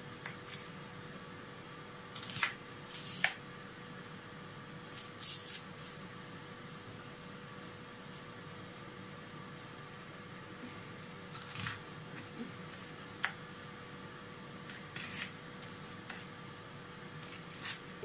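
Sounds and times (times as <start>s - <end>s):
kitchen fan humming: 0.0s - 18.0s
knife cutting on chopping board: 11.4s - 13.4s, 14.7s - 16.3s, 17.2s - 18.0s.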